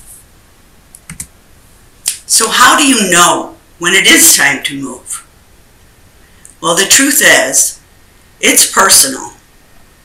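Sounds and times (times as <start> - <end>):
faint room noise: 0.0 - 10.0
computer keys clicking: 0.9 - 1.3.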